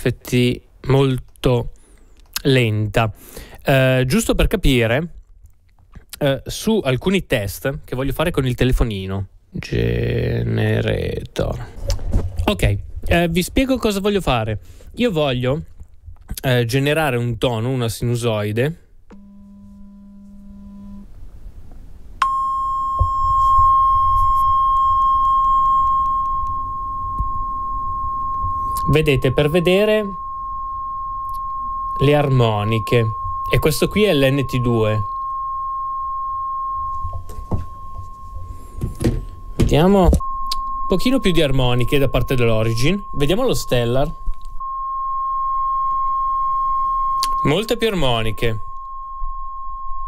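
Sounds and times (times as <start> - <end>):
low steady sine tone: 19.1 - 21.5, 22.1 - 50.0
high-pitched beep: 22.2 - 50.0.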